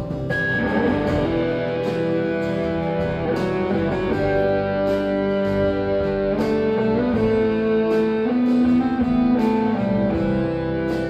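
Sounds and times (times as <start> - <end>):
electric guitar lead notes: 0.0 - 11.0
strummed acoustic guitars: 0.0 - 11.0.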